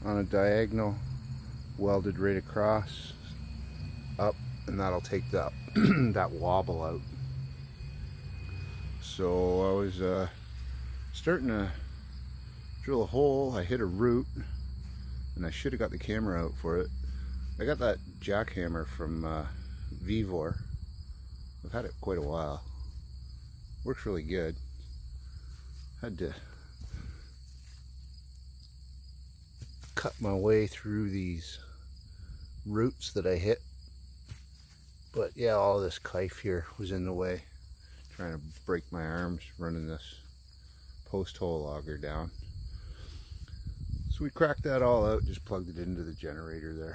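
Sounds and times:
steady low rumble: 0.0s - 34.0s, 36.2s - 46.9s
high-pitched insect chorus: 0.0s - 46.9s.

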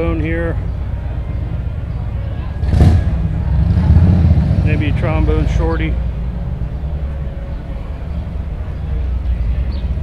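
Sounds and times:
low rumbling street noise: 0.0s - 10.0s.

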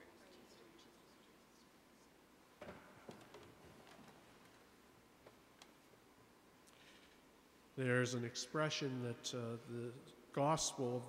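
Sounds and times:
book set down on wooden lectern: 2.6s - 4.2s.

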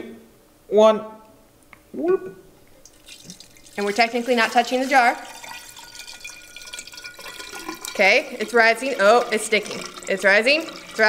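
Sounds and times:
water pouring into glass jar: 2.8s - 11.0s.

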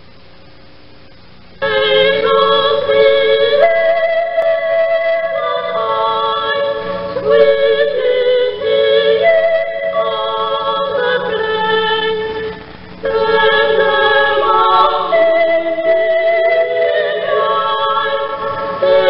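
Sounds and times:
faint tape hiss: 0.0s - 19.0s
choir singing a carol: 1.6s - 19.0s.

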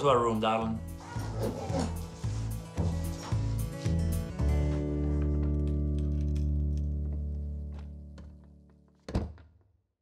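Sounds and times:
background music: 0.0s - 9.1s
wooden door shutting: 9.0s - 9.6s.

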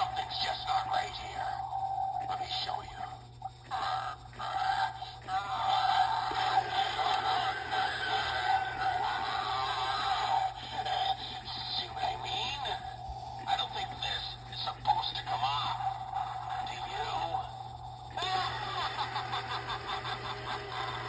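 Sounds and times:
toy singing through speaker: 0.0s - 17.6s.

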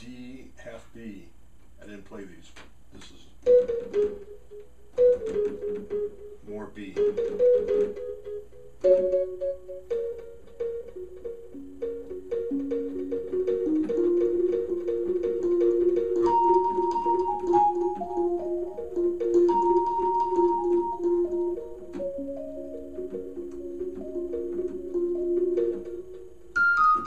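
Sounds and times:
synth organ notes: 3.4s - 27.0s.

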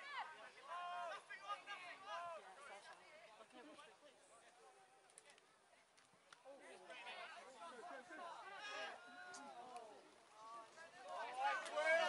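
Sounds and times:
faint clicks: 5.0s - 6.5s.

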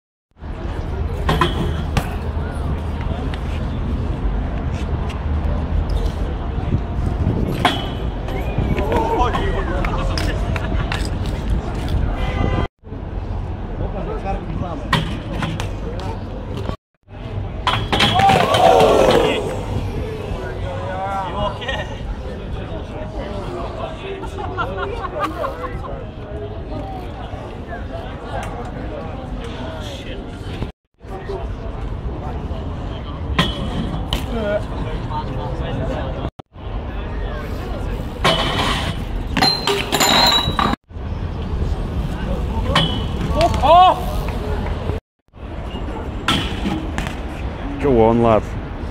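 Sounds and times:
crowd chatter: 0.4s - 39.3s, 41.5s - 48.9s
crowd shouting: 18.1s - 19.9s
bike metallic clinks and rattles: 38.3s - 40.8s.

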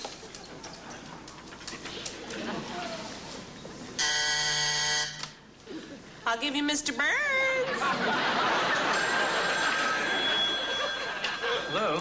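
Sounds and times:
telephone call buzzer: 4.0s - 5.4s, 8.9s - 12.0s.

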